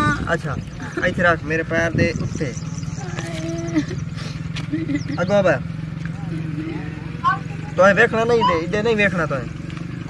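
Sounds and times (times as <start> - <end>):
low engine-like drone: 0.0 - 10.0.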